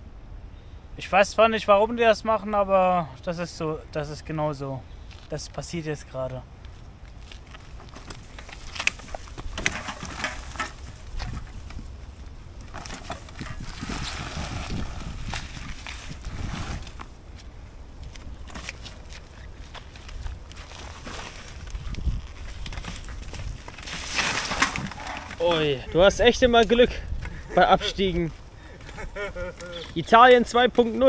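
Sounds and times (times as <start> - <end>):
pushcart rolling on dirt: 7.1 - 17.4, 18.0 - 31.0.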